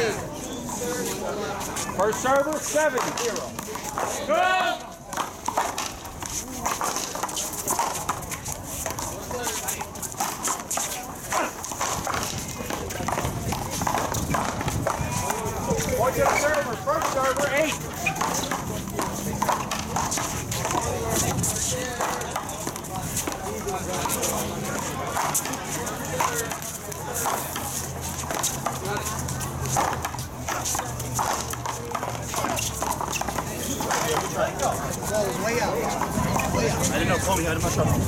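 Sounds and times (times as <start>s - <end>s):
people's voices: 0.0s - 38.0s
shoes scuffing on court: 0.5s - 38.0s
ball smacking paddles and wall: 0.6s - 37.9s.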